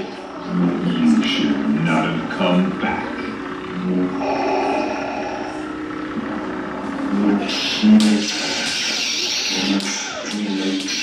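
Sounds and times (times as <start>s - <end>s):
lightsaber hum and swings: 0.0s - 11.0s.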